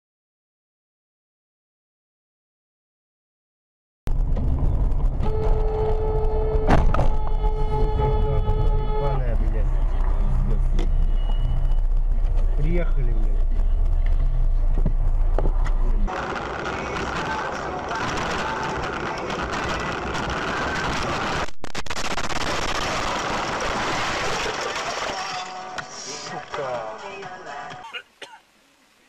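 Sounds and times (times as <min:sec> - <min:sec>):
engine and road rumble: 0:04.1 - 0:28.1.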